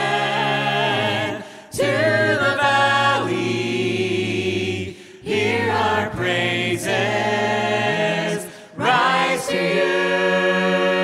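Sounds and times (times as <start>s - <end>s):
a cappella choir singing: 0.0s - 11.0s.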